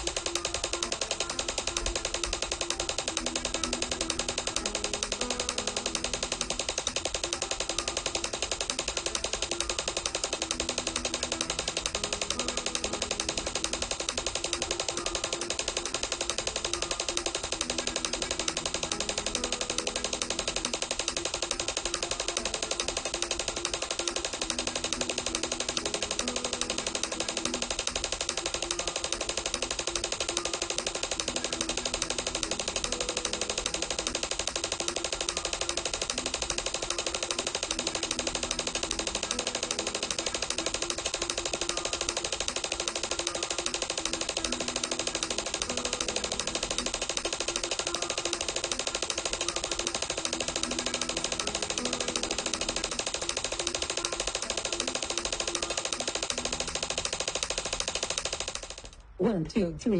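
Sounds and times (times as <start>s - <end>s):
metronome clicks: 0.0s - 59.0s.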